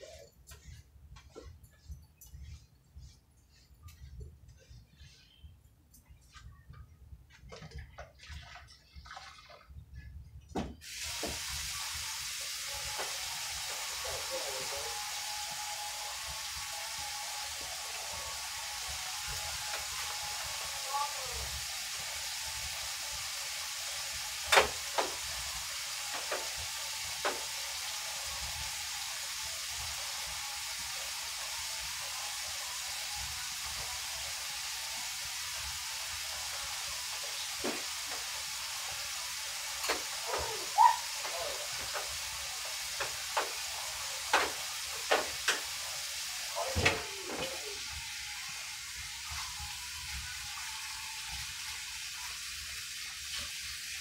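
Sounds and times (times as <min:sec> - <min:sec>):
steady hiss: 0:10.7 - 0:54.0
knocks against stovetop burners: 0:44.3 - 0:45.7.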